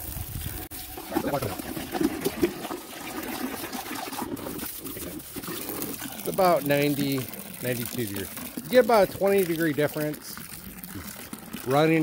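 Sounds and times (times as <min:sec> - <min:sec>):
water pouring into plastic bucket: 0:00.0 - 0:12.0.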